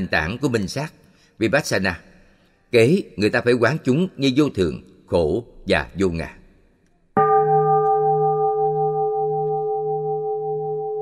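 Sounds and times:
bowl bell ringing: 0:07.2 - 0:11.0.

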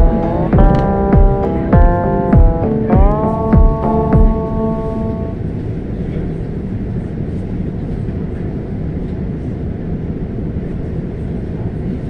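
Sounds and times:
train rumbling inside coach: 0:00.0 - 0:12.0.

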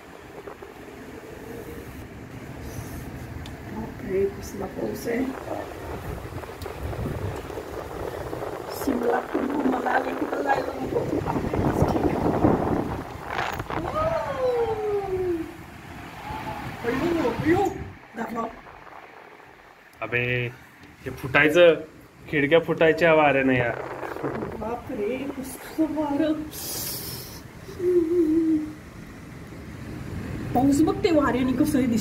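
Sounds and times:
wind and heavy rain: 0:00.0 - 0:32.0.

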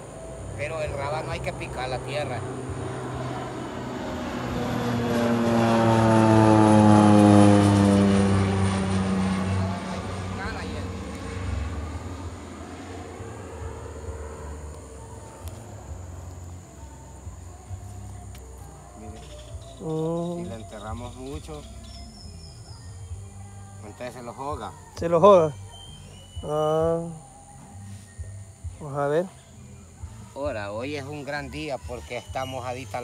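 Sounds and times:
propeller aircraft engine drone: 0:00.0 - 0:23.5.

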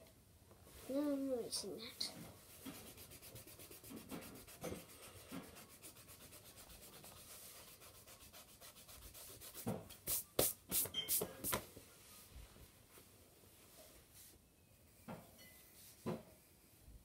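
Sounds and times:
rubbing on paper: 0:02.4 - 0:11.6.

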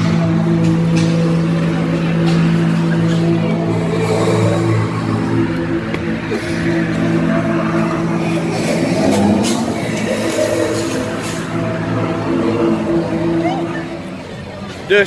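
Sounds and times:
droning hum of held tones: 0:00.0 - 0:14.9.

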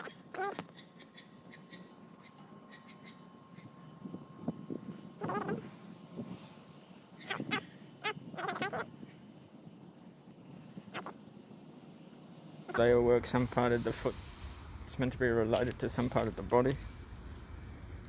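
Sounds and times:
wavering vocal cries: 0:00.0 - 0:00.7, 0:05.0 - 0:05.9, 0:07.1 - 0:09.1, 0:10.8 - 0:11.2.

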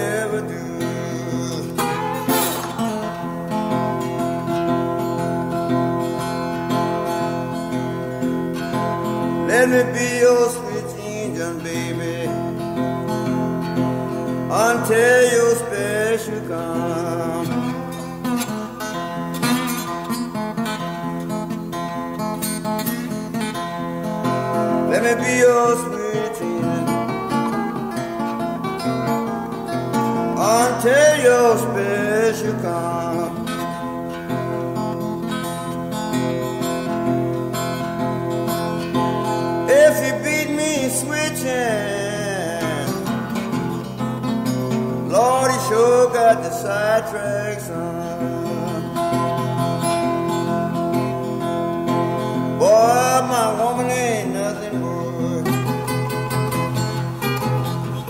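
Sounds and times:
acoustic blues guitar: 0:00.0 - 0:58.0.

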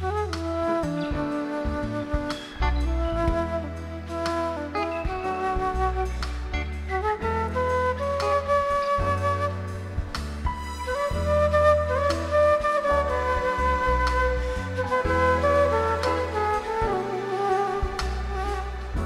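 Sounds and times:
band backing: 0:00.0 - 0:19.0
flute melody: 0:00.0 - 0:19.0
held bass notes: 0:00.0 - 0:19.0.

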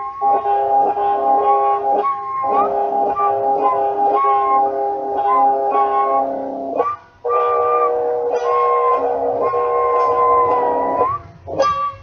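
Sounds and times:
guitar music with bending melody: 0:00.0 - 0:12.0.

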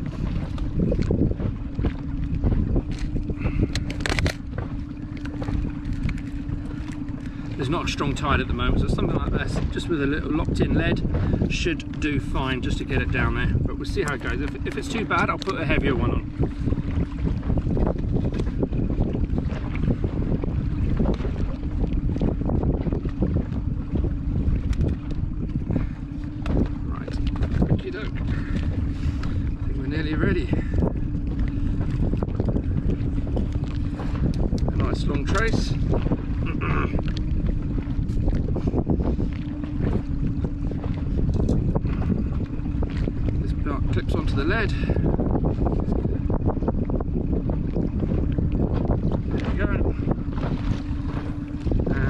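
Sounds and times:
constant low hum: 0:00.0 - 0:52.0
wind buffeting microphone: 0:00.0 - 0:52.0
fishing tackle clicks and knocks: 0:02.2 - 0:07.2, 0:24.6 - 0:25.2, 0:33.4 - 0:35.6, 0:37.0 - 0:38.4, 0:41.2 - 0:41.7.

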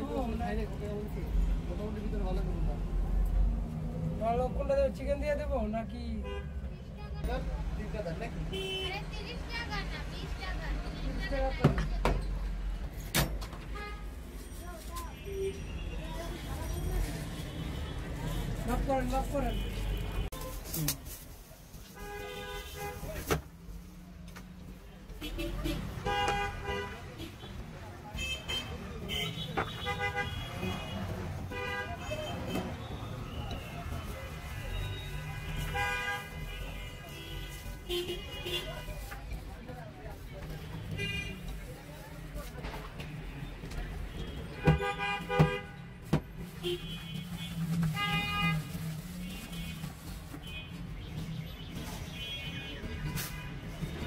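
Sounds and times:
low traffic rumble: 0:00.0 - 0:54.0
vehicle horn: 0:25.2 - 0:27.4, 0:28.2 - 0:33.4, 0:34.5 - 0:38.9, 0:44.2 - 0:45.8, 0:46.6 - 0:50.8
vehicle horn toots: 0:28.2 - 0:33.2.

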